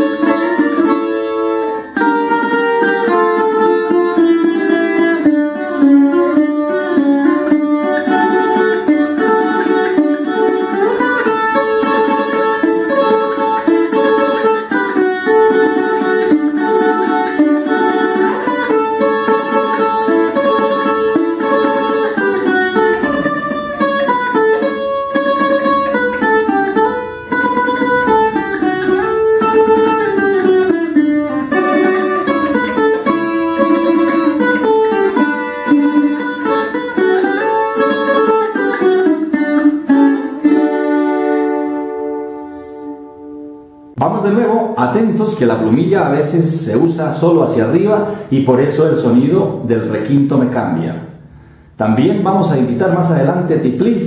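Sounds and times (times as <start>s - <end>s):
picked string instrument melody: 0.0s - 54.0s.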